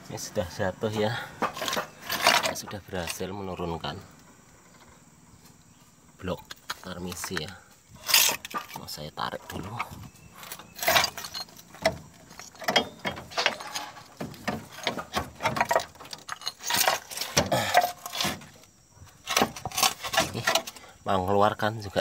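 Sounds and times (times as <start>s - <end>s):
metal block scraping over concrete: 1.4s - 3.2s, 8.0s - 8.8s, 19.2s - 20.8s.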